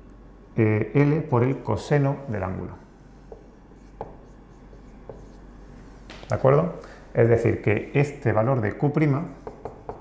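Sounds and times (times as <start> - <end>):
marker scratching on whiteboard: 2.8 - 6.1, 9.3 - 10.0.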